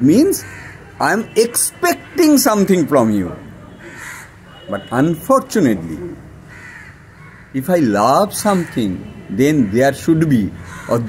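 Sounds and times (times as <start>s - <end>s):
man speaking: 0.0s - 3.6s, 4.6s - 6.3s, 7.6s - 11.0s.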